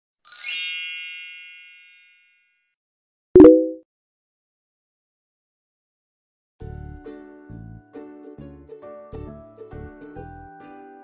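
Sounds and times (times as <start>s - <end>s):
bright chime: 0.3s - 2.4s.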